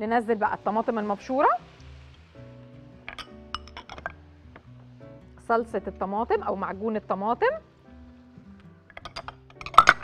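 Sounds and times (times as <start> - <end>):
soft background music: 0.0 - 10.0
glass bowl clinking against pan: 3.1 - 4.2.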